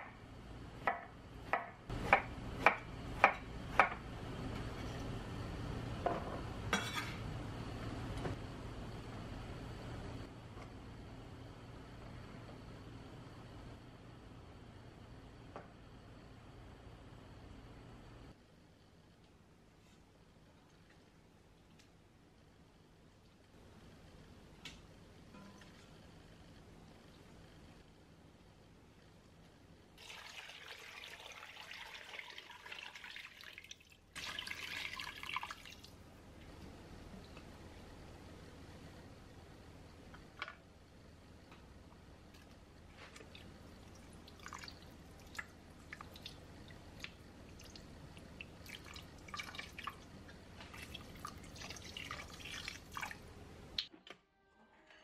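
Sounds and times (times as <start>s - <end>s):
water pouring into pot: 30.0s - 36.0s, 43.8s - 53.3s.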